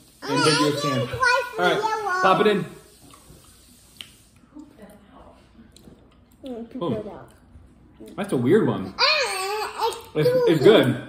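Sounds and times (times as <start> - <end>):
people chewing: 2.9 - 6.6.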